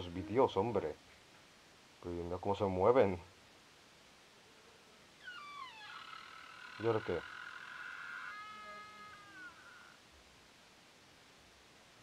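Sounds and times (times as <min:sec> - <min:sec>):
door creaking open: 0:05.2 - 0:09.9.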